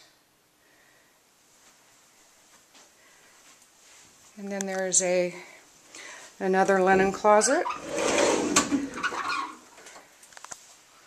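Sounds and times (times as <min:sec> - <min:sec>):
closet door opening clicks: 0:07.6 - 0:09.6.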